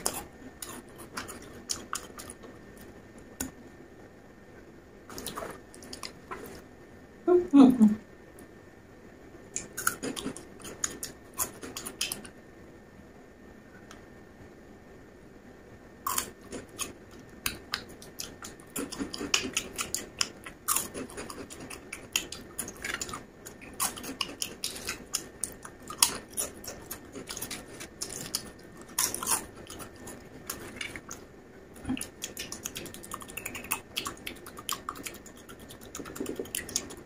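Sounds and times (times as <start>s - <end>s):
chewing crunchy snacks: 0.0s - 2.9s, 5.1s - 6.6s, 9.6s - 12.3s, 16.1s - 37.0s.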